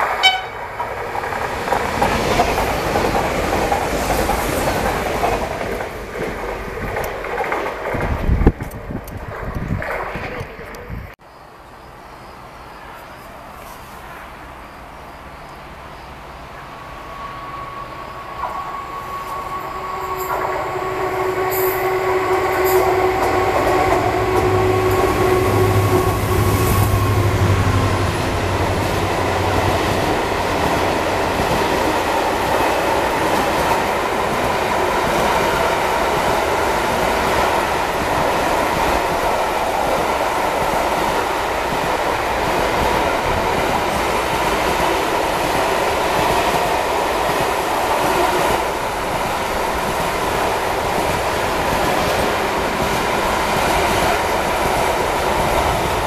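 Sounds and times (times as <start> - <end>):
locomotive whine: 0.0 - 6.9, 15.3 - 56.0
train wheels rumbling on rails: 0.0 - 11.2, 15.7 - 56.0.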